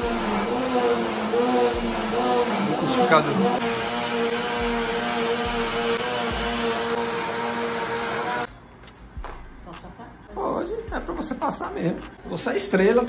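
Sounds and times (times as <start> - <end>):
electric blender motor running: 0.0 - 8.5.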